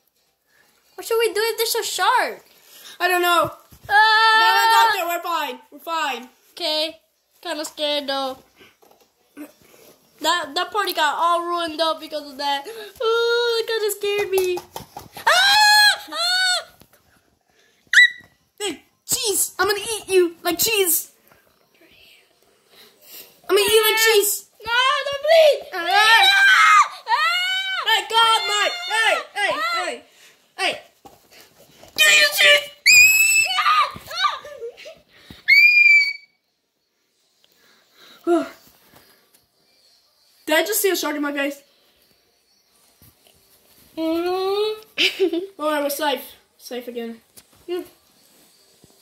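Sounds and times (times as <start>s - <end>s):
child screaming: 25.9s - 30.0s, 32.8s - 34.5s, 35.5s - 36.3s.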